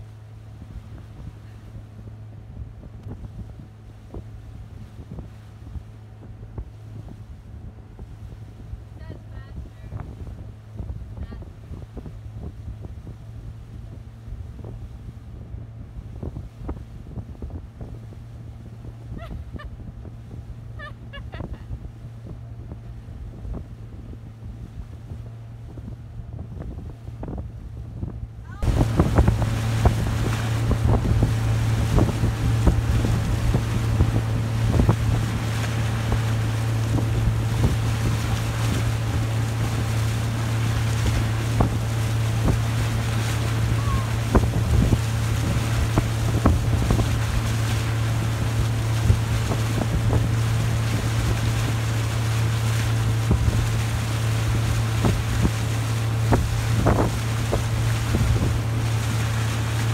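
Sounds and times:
motorboat engine droning: 0.0s - 59.9s
rushing wake water: 0.0s - 59.9s
wind buffeting microphone: 0.0s - 59.9s.

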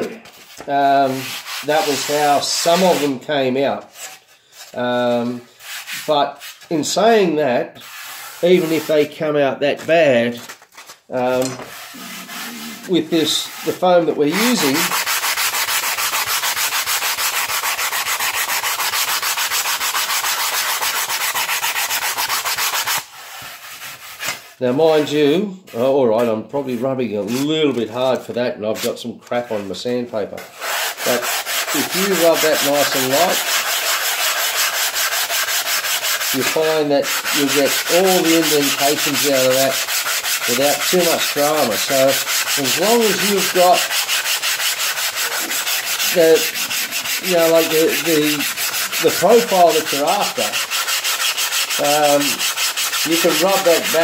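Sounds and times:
hand sanding foam with sandpaper: 0.0s - 3.2s, 3.9s - 7.1s, 7.8s - 9.2s, 11.7s - 24.6s, 30.5s - 54.0s.

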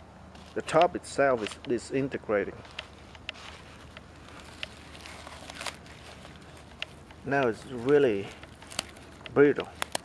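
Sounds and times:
plastic tarp crackling: 3.4s - 10.0s.

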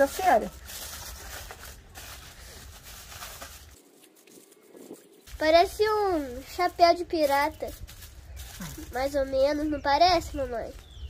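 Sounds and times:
foil crinkling: 0.0s - 5.6s, 7.2s - 9.4s.

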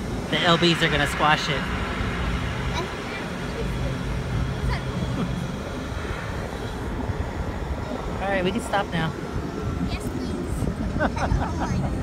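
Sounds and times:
air rushing: 0.0s - 11.0s
ride machinery rumble and hum: 0.0s - 12.0s.

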